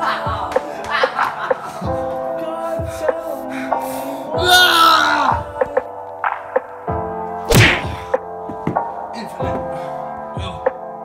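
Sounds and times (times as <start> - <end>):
background music held notes: 0.0 - 11.0
punch whacks: 7.5 - 8.1.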